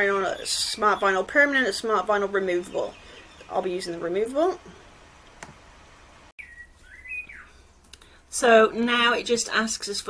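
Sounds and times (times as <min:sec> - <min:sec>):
bird chirping: 0:00.0 - 0:04.9, 0:06.4 - 0:07.7.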